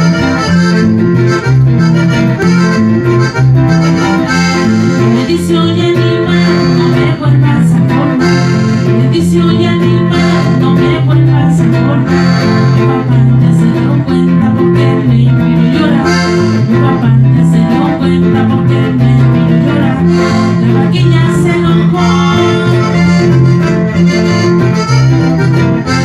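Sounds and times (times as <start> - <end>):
accordion melody: 0.0 - 26.0
bajo sexto: 0.0 - 26.0
electric bass: 0.0 - 26.0.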